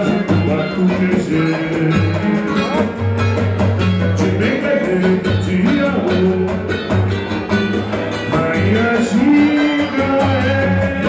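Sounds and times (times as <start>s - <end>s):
cavaquinho: 0.0s - 11.0s
guitar bass lines: 0.0s - 11.0s
percussion steady beat: 0.0s - 11.0s.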